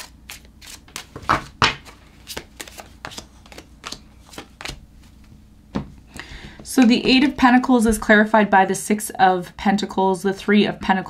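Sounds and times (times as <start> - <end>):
cards being shuffled: 0.0 - 5.3.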